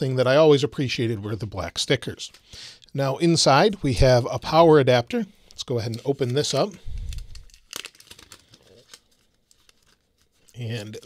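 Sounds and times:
paper wrapper crinkling and tearing: 0:05.6 - 0:11.0.

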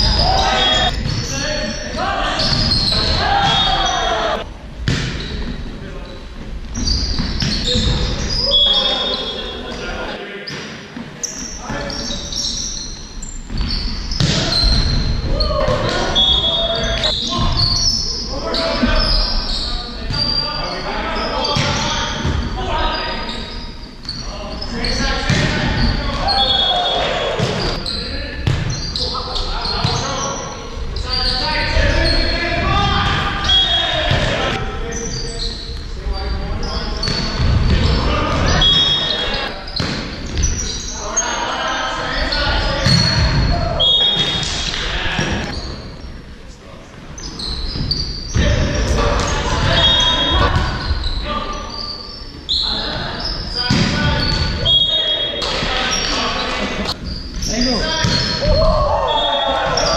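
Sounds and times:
players shouting: 0:00.0 - 0:04.5, 0:25.8 - 0:27.8
sneaker squeaks on hardwood: 0:00.0 - 0:05.6, 0:06.7 - 0:09.8, 0:10.5 - 0:15.2, 0:15.8 - 0:20.6, 0:21.2 - 0:41.3, 0:42.2 - 0:46.1, 0:47.2 - 0:56.3, 0:56.9 - 0:59.9.

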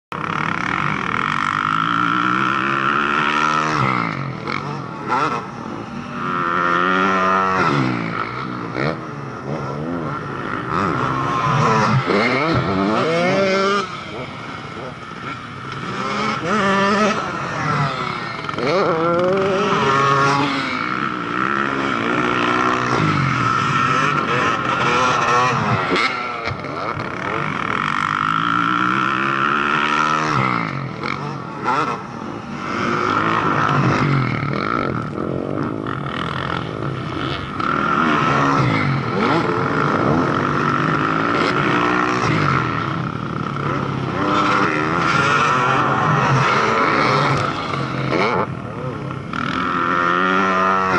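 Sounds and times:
distant motorcycle engine drone: 0:00.1 - 0:50.9
motocross bikes revving and passing: 0:00.1 - 0:50.9.

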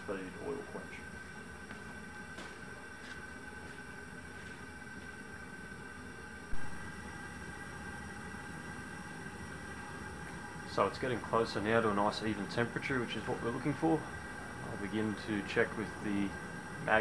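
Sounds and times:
gas forge burner rushing: 0:00.0 - 0:17.0.

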